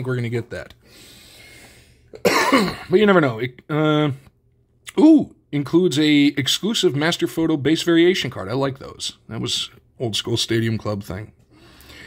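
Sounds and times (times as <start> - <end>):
man coughing: 2.2 - 3.0.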